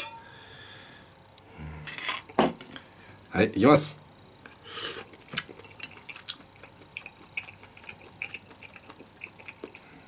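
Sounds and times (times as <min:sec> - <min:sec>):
person chewing: 0:04.7 - 0:10.0.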